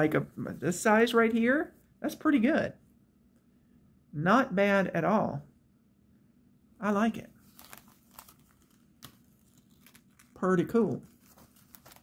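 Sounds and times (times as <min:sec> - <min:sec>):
fabric crinkling and crackling: 0:07.4 - 0:12.0.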